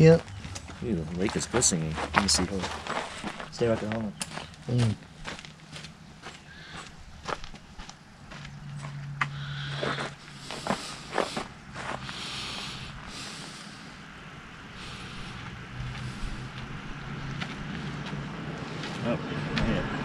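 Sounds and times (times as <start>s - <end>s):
footsteps on sandy dirt: 0.0s - 13.8s, 14.8s - 20.0s
distant vehicle engine hum: 0.0s - 20.0s.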